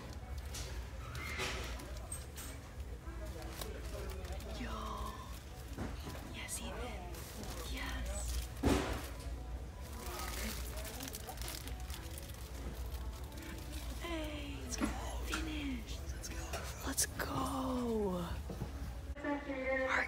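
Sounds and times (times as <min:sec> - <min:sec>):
plastic-wrapped packs rustling: 0:00.0 - 0:14.8
store background noise: 0:00.0 - 0:20.0
plastic crinkle or thump: 0:08.3 - 0:13.7.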